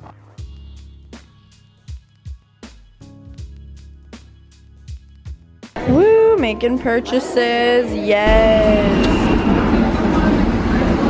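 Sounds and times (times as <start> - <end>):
subway train rumbling: 5.9 - 11.0.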